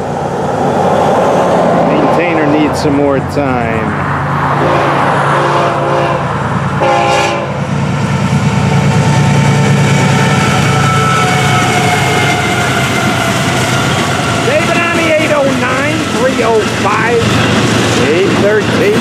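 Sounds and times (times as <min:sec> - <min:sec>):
diesel locomotive engines droning: 0:00.0 - 0:19.0
train horn chord blasts: 0:04.6 - 0:07.6.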